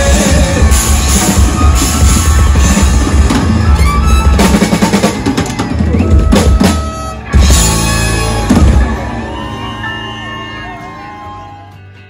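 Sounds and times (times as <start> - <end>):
drum rolls and fills: 0.0 - 11.2
rock band playing: 0.0 - 12.0
loud full-band hit: 0.7 - 9.4.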